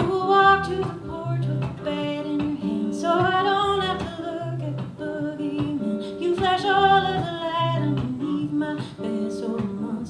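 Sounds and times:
quiet guitar: 0.0 - 10.0
woman singing folk song: 0.0 - 10.0.

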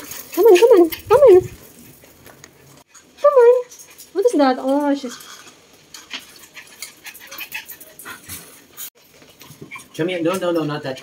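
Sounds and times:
dog whimpering: 0.3 - 1.6.

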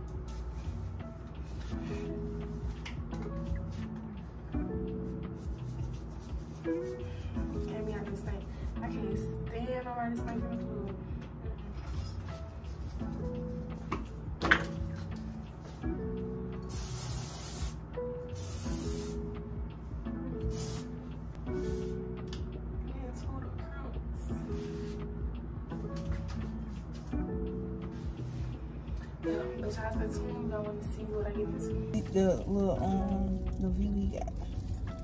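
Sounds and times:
background music: 0.0 - 35.0
aerosol spray can hissing: 16.6 - 17.8, 18.4 - 19.3, 20.5 - 21.0.

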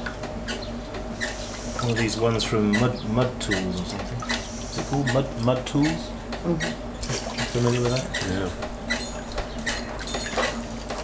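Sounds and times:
potter's wheel humming: 0.0 - 11.0.

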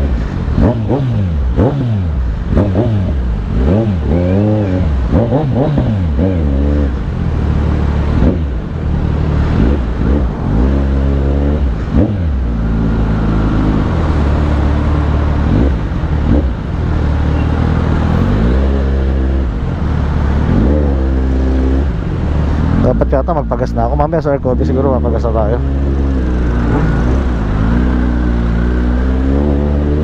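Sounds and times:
motorcycle idling and revving: 0.0 - 30.0.

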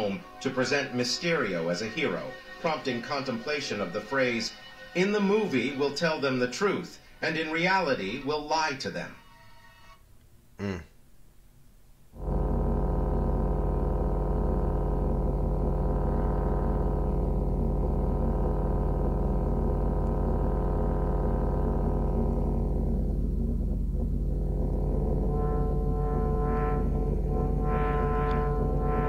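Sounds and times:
deep electronic drone: 12.2 - 29.0.

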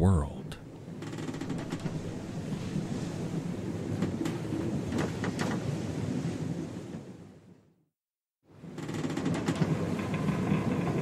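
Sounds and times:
wind: 0.0 - 7.8, 8.4 - 11.0.

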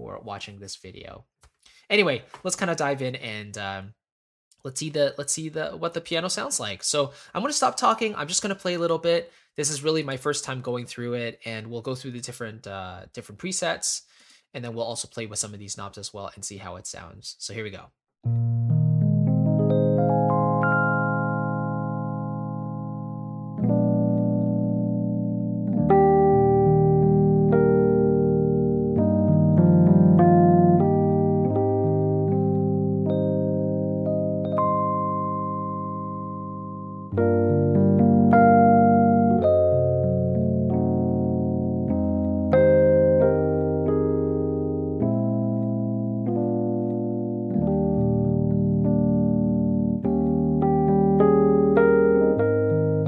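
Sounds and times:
electric piano sustained chords: 18.3 - 53.0.

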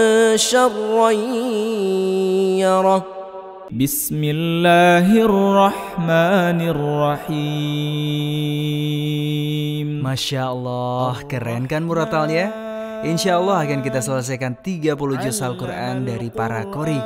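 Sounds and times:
lower male voice reciting: 0.0 - 3.0, 3.7 - 17.0
man reciting melodically: 0.0 - 17.0.

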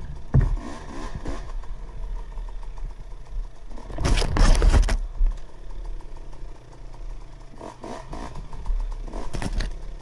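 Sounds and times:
dirt bike engine revving: 0.0 - 4.8, 7.4 - 10.0
low clunk: 0.2 - 0.6.

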